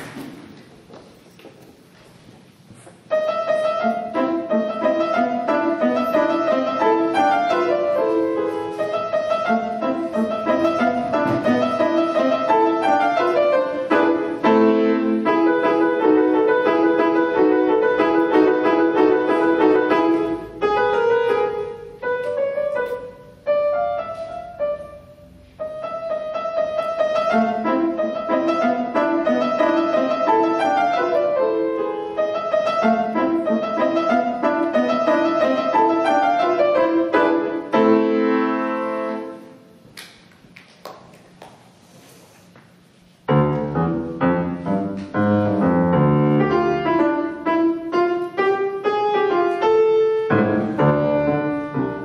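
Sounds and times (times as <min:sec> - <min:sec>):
solo piano tune: 0:03.0 - 0:39.8, 0:42.7 - 0:52.0.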